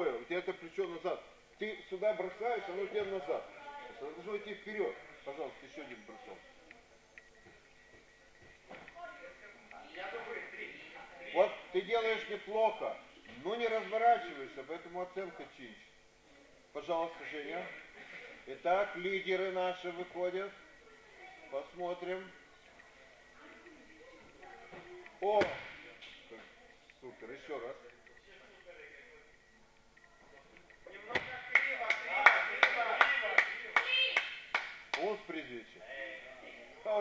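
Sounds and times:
faint high hum: 0.0s - 34.6s.

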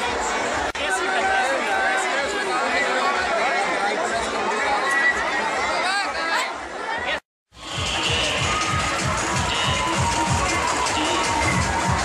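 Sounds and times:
crowd babble: 0.0s - 12.0s.

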